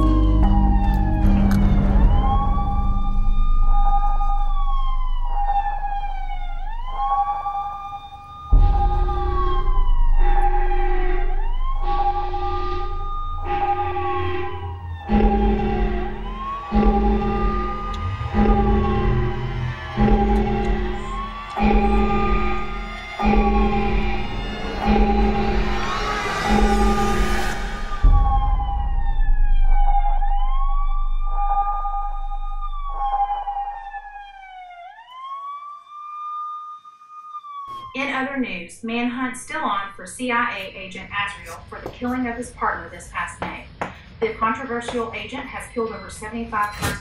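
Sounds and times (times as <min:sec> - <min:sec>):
tense music score: 0:00.0 - 0:38.0
wailing siren: 0:00.0 - 0:39.2.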